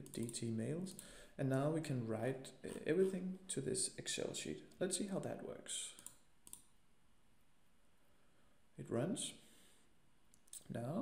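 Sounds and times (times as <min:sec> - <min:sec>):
computer mouse click: 0:06.0 - 0:06.7.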